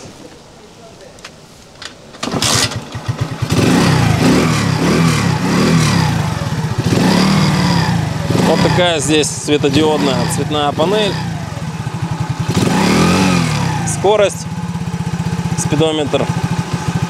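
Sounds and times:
moped engine cranking: 1.8s - 17.0s
moped engine revving: 2.0s - 17.0s.

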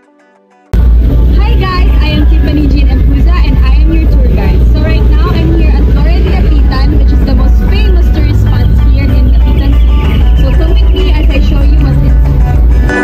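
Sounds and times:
loud low rumble: 0.8s - 13.0s
young woman talking: 1.4s - 12.2s.

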